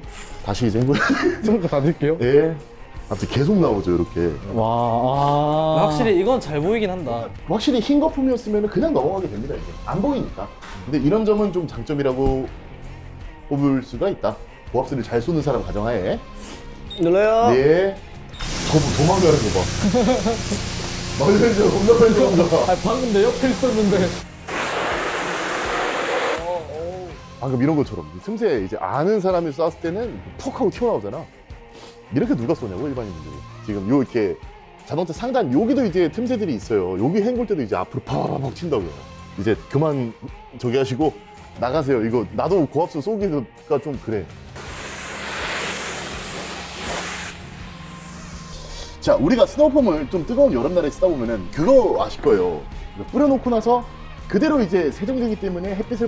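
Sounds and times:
high-pressure water spray hissing: 0:18.4 - 0:26.7, 0:44.6 - 0:49.0.

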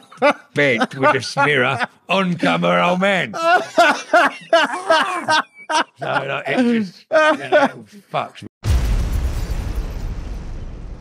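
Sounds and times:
explosion boom: 0:08.6 - 0:11.0
low rumble: 0:08.6 - 0:11.0.

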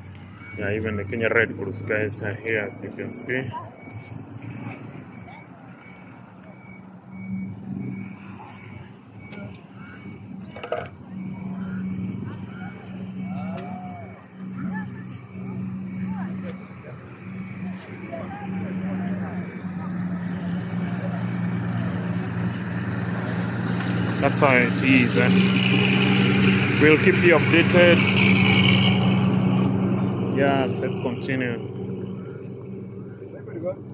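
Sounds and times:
high-pitched beeping: 0:00.0 - 0:19.7
faint voices: 0:00.0 - 0:28.7
vehicle engine humming: 0:00.0 - 0:33.9.

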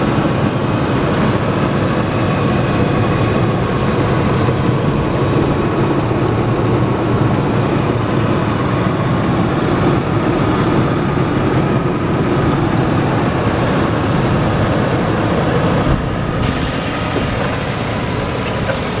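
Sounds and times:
pickup engine idling: 0:00.0 - 0:19.0.

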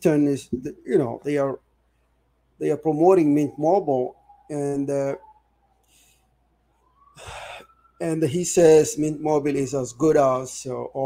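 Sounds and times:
man inhaling through mouth: 0:07.2 - 0:07.7.

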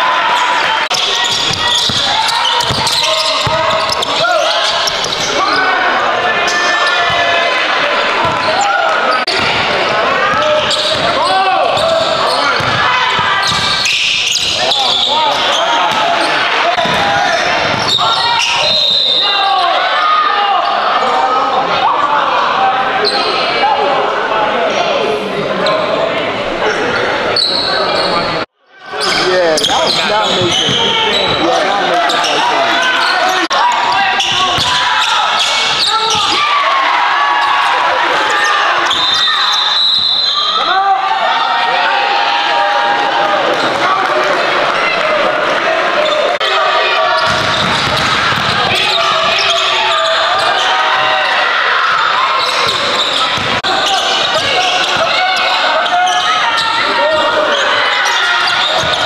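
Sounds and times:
voices talking and calling out: 0:00.0 - 0:59.0
basketball bouncing: 0:01.2 - 0:04.2, 0:08.2 - 0:08.5, 0:10.3 - 0:11.2, 0:11.8 - 0:13.8, 0:16.8 - 0:17.9, 0:47.2 - 0:49.1, 0:52.6 - 0:53.6.

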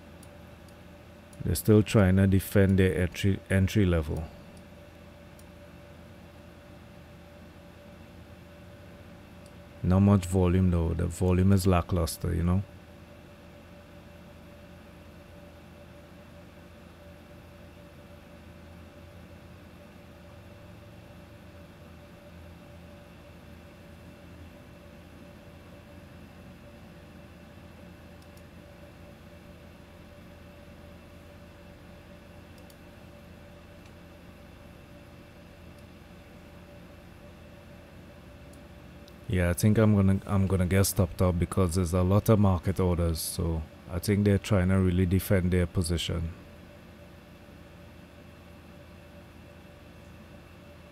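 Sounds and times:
low hum and hiss: 0:00.0 - 0:50.9.

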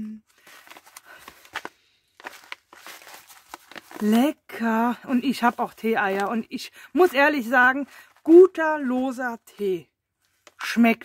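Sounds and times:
paper pouch rustling: 0:00.2 - 0:10.6.

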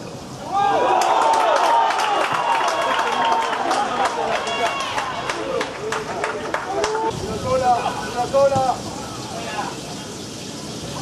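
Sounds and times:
people shouting: 0:00.4 - 0:05.8, 0:06.4 - 0:09.8
sharp claps: 0:01.0 - 0:07.0.

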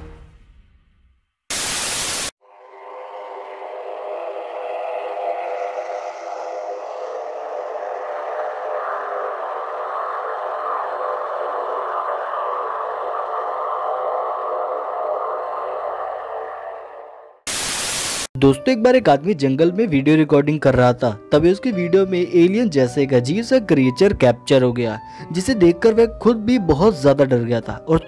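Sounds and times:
loud static burst: 0:01.5 - 0:02.4, 0:17.4 - 0:18.3.

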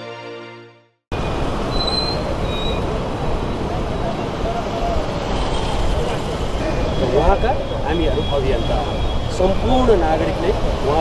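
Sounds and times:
street traffic: 0:01.1 - 0:11.0.

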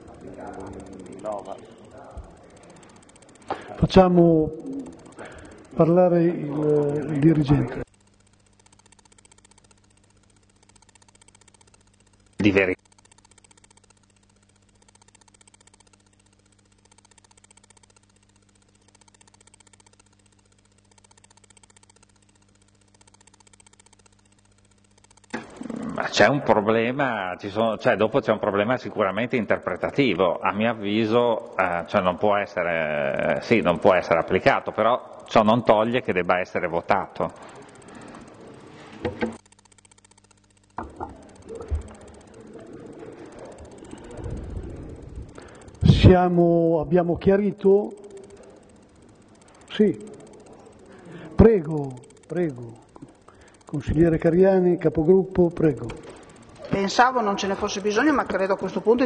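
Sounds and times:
low electrical hum: 0:00.0 - 0:59.0
man speaking: 0:03.7 - 0:04.9, 0:05.8 - 0:07.8, 0:12.4 - 0:12.8, 0:45.8 - 0:48.0, 0:53.7 - 0:56.0.

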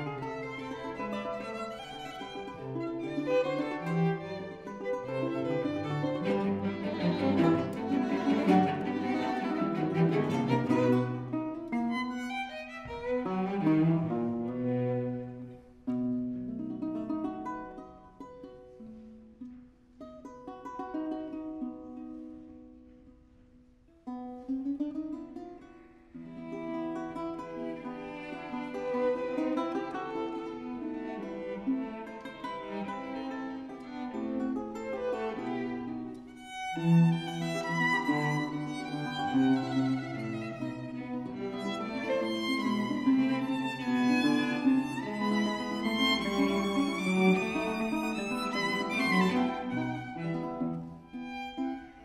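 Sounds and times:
violin: 0:00.0 - 0:22.8, 0:24.3 - 0:52.0
cello: 0:00.0 - 0:52.0
classical guitar: 0:00.0 - 0:52.0.

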